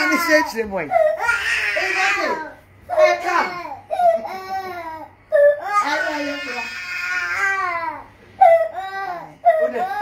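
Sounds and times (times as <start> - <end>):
baby crying: 0.0 - 10.0.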